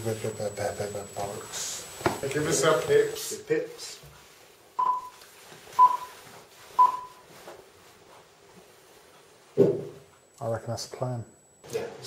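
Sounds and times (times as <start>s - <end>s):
short electronic beeps: 4.8s - 5.2s, 5.8s - 6.2s, 6.8s - 7.2s.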